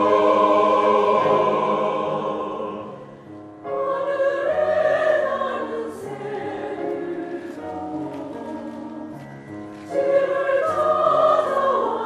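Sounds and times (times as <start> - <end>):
mixed choir singing: 0.0 - 9.3, 9.9 - 12.0.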